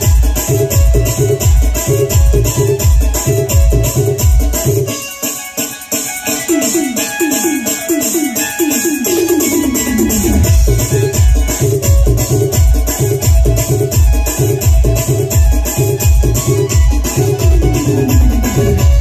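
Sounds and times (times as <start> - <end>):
heavy bass beat: 0.0 - 4.9, 9.0 - 19.0
live band music: 0.0 - 19.0.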